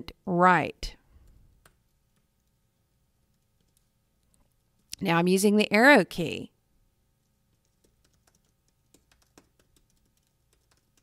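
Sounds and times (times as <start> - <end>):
computer keyboard typing: 3.3 - 3.9, 7.5 - 11.0.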